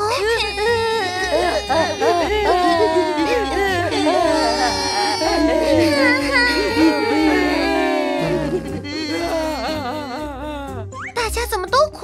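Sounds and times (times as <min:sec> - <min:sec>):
cartoon characters crying and wailing: 0:00.0 - 0:11.0.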